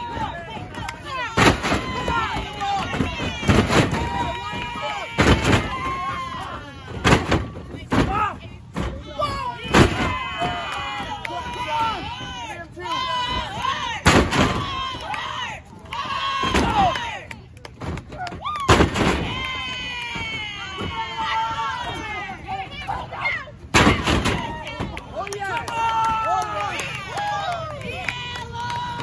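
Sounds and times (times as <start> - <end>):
people shouting: 0.0 - 17.3, 18.2 - 29.0.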